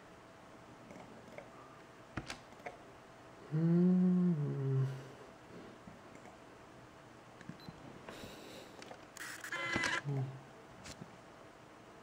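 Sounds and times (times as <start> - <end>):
person humming mm-hmm: 3.4 - 5.2, 10.0 - 10.4.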